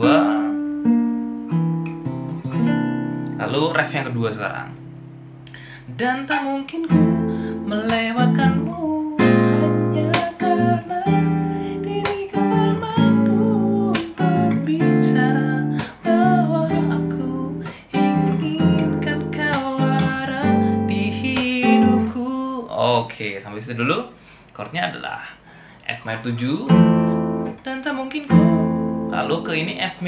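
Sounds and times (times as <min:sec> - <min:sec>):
nylon-string guitar fingerpicked chords: 0:00.0 - 0:23.0, 0:25.9 - 0:30.0.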